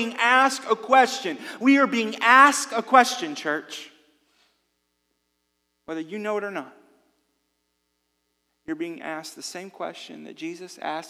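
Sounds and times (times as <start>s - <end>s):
man talking: 0.0s - 4.0s, 5.9s - 6.8s, 8.7s - 11.0s
faint electrical hum: 0.0s - 11.0s.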